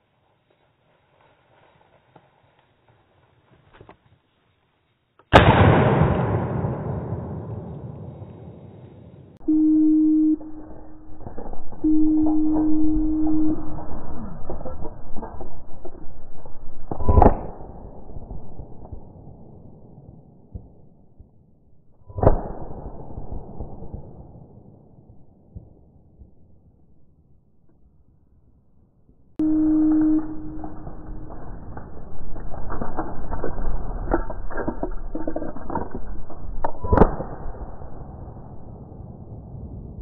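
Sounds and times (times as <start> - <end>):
shotgun shot echoing: 5.3 - 8.6
steady low tone: 9.3 - 23.8, 24.4 - 40.0.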